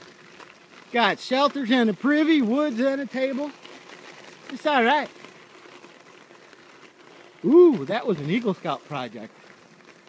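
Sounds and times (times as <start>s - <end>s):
bicycle rolling over bumpy surface: 0.0s - 10.0s.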